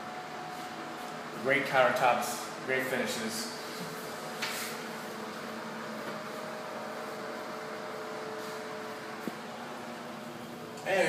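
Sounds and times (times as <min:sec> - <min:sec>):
ventilation hum: 0:00.0 - 0:11.0.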